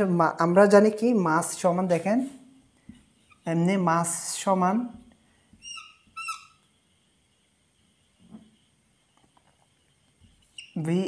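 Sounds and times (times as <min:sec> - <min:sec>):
faint room noise: 0:00.0 - 0:11.0
marker squeaking on whiteboard: 0:02.9 - 0:03.6, 0:05.4 - 0:10.9.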